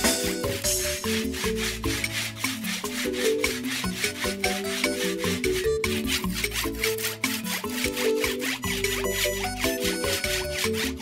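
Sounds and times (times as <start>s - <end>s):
background music with beat: 0.0s - 11.0s
machete scraping on concrete: 0.0s - 11.0s.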